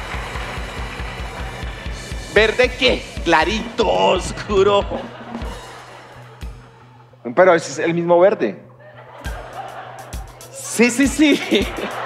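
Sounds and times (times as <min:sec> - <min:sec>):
band music with kick drum: 0:00.0 - 0:06.8, 0:09.2 - 0:12.0.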